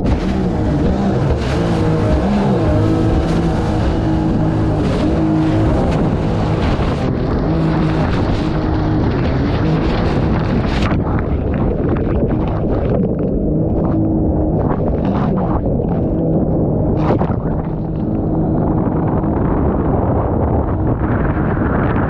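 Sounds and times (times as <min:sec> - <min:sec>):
boat engine running hard: 0:00.0 - 0:22.0.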